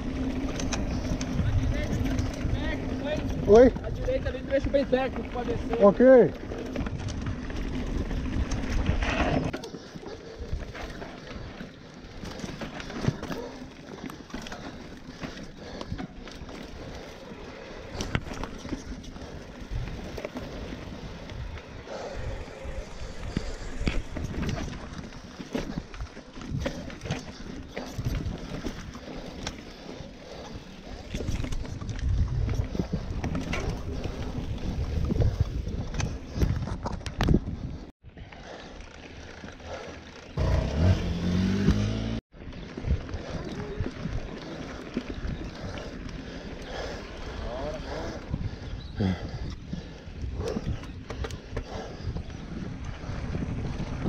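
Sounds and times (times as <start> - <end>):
bike knocking and rattling: 0.0 - 37.9, 38.5 - 54.0
bike tyres rumbling on dirt: 0.0 - 54.0
motorcycle engine revving: 39.7 - 42.2.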